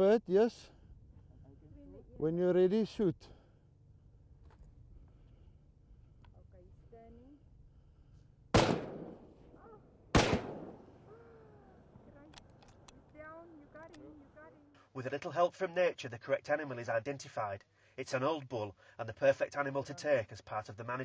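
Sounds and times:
rifle shots with echo: 8.5s - 9.5s, 10.1s - 11.1s.

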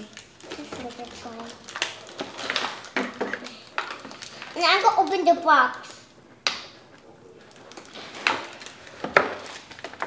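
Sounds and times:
packaging rustling: 0.0s - 5.8s, 6.8s - 10.0s.

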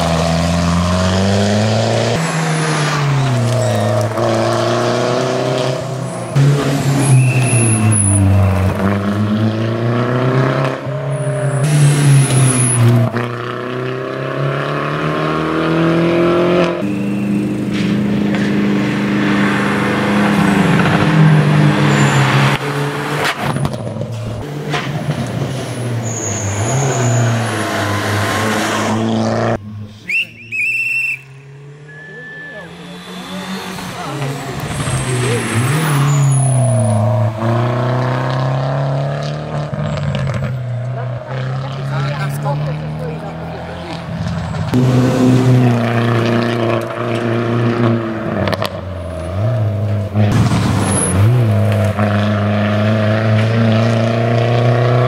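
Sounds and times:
rally car engine revving: 0.0s - 55.0s.

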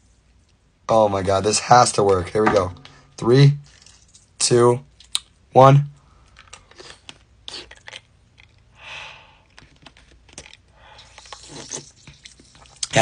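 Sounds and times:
ice cube crunching in mouth: 6.4s - 8.7s.

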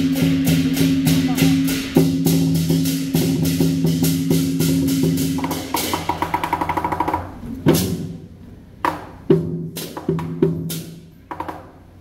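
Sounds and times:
loud cymbal crash: 0.0s - 6.6s.

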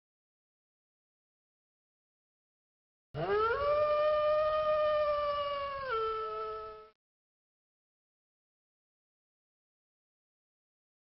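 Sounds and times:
wolf howling: 3.2s - 7.0s.

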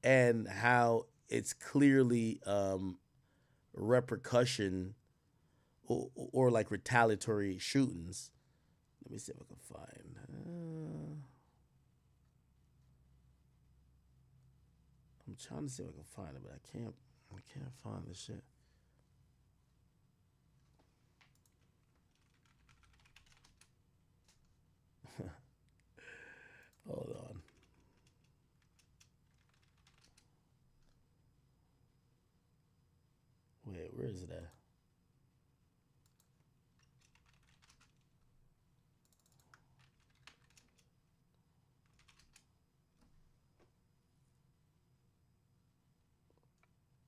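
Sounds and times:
typing on keyboard: 21.2s - 24.5s, 26.7s - 31.0s, 36.0s - 38.2s, 39.0s - 40.9s, 41.8s - 42.5s.

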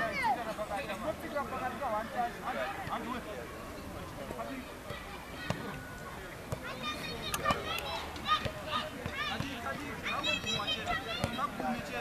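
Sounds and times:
young players shouting: 0.0s - 0.5s, 4.9s - 12.0s.

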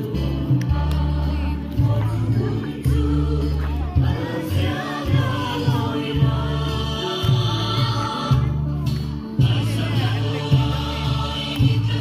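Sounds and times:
group of voices singing: 0.0s - 12.0s
loud amplified music with deep bass: 0.0s - 12.0s.

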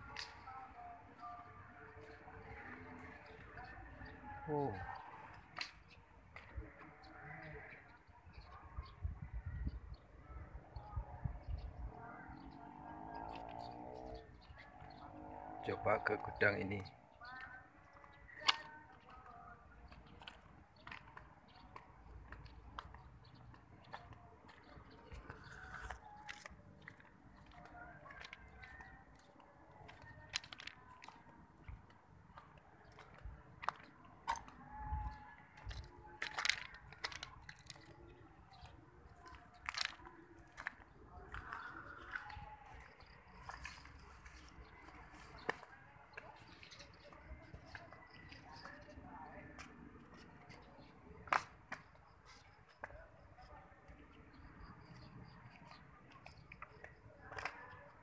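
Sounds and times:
footsteps crunching on gravel: 17.3s - 53.3s.

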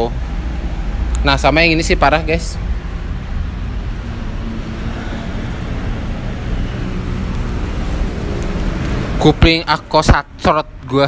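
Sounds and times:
engines rumbling: 0.0s - 11.0s.

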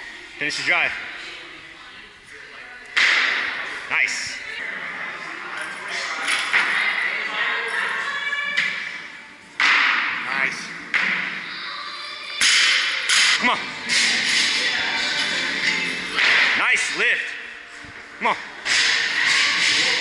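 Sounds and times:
gym voices: 0.0s - 20.0s
background music: 12.4s - 20.0s.

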